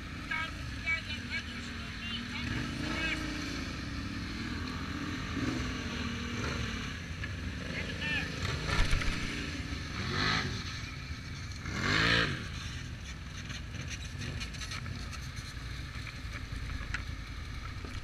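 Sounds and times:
atv engines low rumble: 0:00.0 - 0:18.0.

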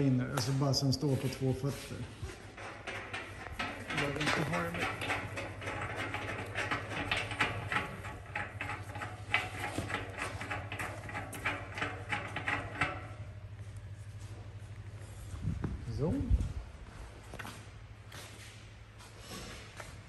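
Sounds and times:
metal threads clicking and scraping: 0:02.4 - 0:13.4.

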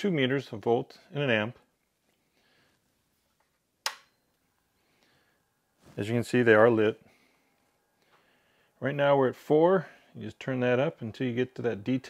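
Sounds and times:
power supply switch click: 0:03.8 - 0:04.1.

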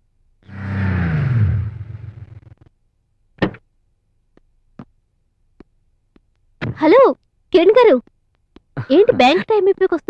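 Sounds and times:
small car engine slowing: 0:00.5 - 0:02.6.

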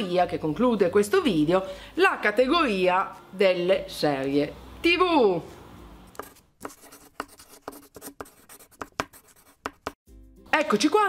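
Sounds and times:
chalk writing on blackboard: 0:06.1 - 0:10.0.

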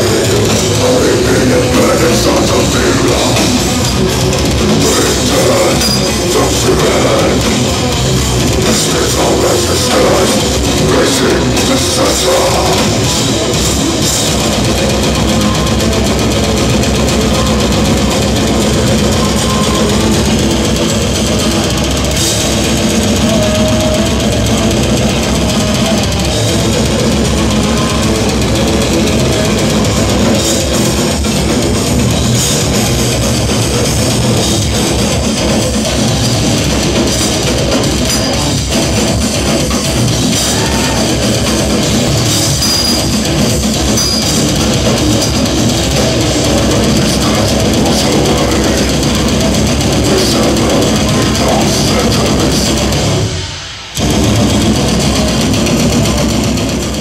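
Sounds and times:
death metal band playing live: 0:00.0 - 0:57.0.

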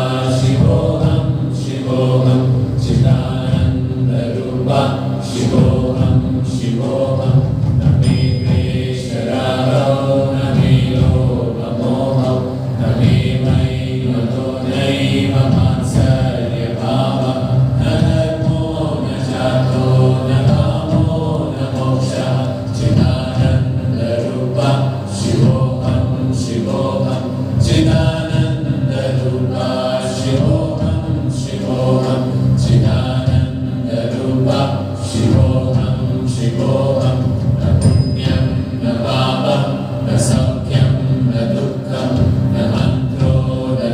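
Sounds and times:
voices chanting: 0:00.0 - 0:43.9.

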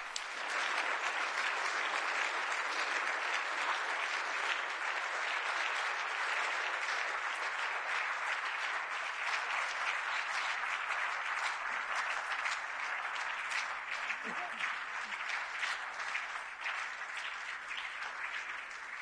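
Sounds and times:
audience applause: 0:00.0 - 0:19.0.

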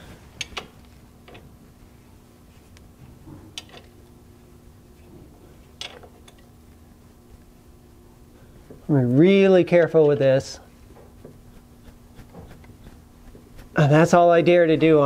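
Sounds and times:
faint hum: 0:00.0 - 0:15.0.

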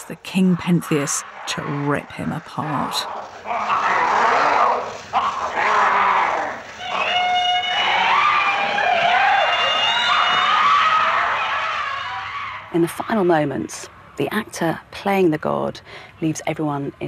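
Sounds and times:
voices wailing: 0:00.0 - 0:13.9
people screaming and shrieking: 0:00.6 - 0:13.5.

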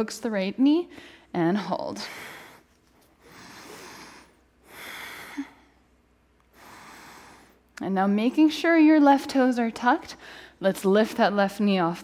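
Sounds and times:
woman breathing: 0:00.9 - 0:07.7, 0:10.1 - 0:10.6.

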